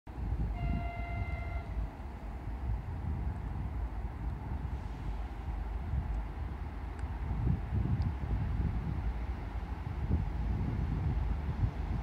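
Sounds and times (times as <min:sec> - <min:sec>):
locomotive horn: 0:00.5 - 0:01.9.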